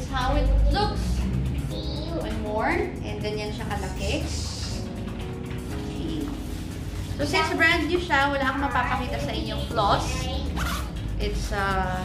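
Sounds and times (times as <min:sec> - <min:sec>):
zip-like rustle: 0:10.6 - 0:10.9.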